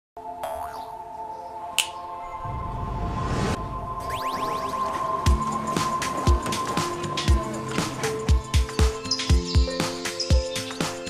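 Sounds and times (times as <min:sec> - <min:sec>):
light music: 0:00.2 - 0:11.0
finger snap: 0:01.8 - 0:02.0.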